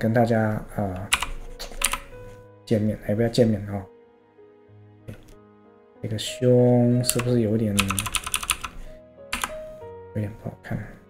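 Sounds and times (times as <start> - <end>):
computer keyboard keys clicking: 1.0 - 2.2, 7.0 - 9.6.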